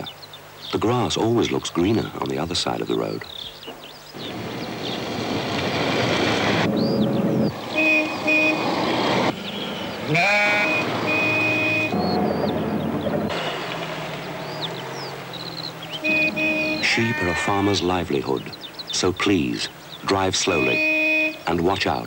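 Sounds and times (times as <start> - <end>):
car engine and tyres on road: 3.5 - 22.0
car horn honks: 7.7 - 8.9, 9.8 - 12.7, 15.8 - 18.0, 20.4 - 21.8
sheep bleating: 10.0 - 11.9, 15.9 - 17.9.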